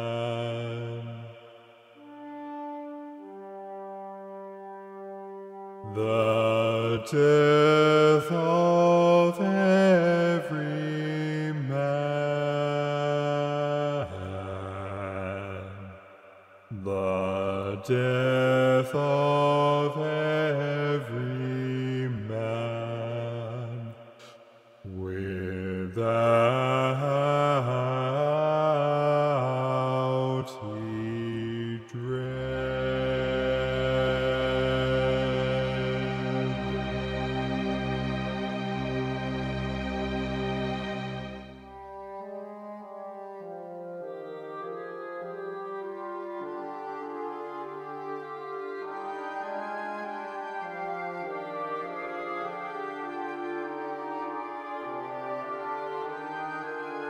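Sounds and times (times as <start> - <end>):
held low orchestral note: 33.7 - 42.0.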